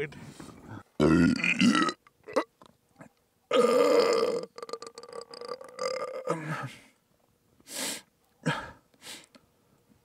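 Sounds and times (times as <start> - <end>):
person burping: 1.0 - 2.5, 3.5 - 6.7.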